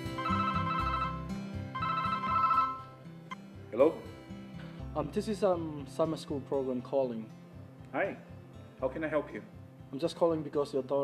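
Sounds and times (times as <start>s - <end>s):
mobile phone ringing: 0.0s - 3.0s.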